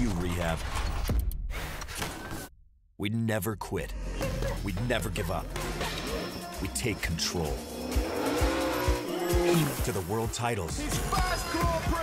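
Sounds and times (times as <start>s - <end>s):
music with heavy beat: 4.5s - 10.1s, 10.7s - 12.0s
racing engine revving: 5.5s - 10.3s.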